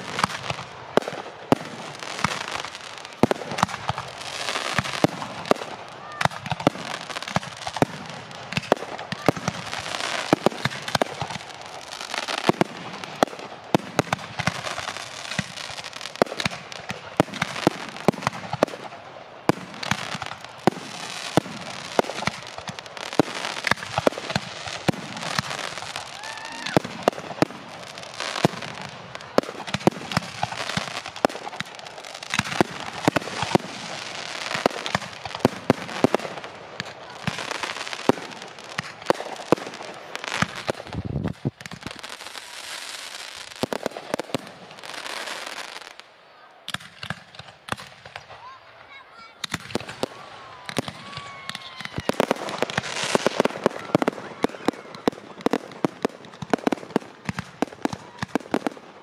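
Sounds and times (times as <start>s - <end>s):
fireworks bursting: 0.0s - 59.0s.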